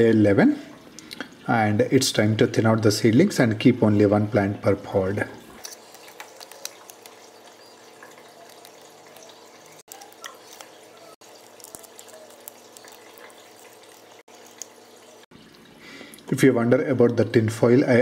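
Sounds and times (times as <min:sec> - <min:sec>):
water trickling: 0:00.0 - 0:03.3, 0:04.1 - 0:17.5.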